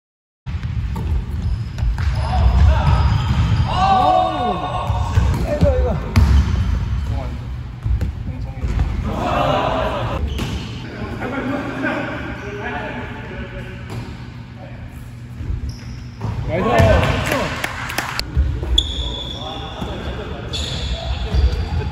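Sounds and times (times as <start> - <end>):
players calling out: 9.0 - 10.2.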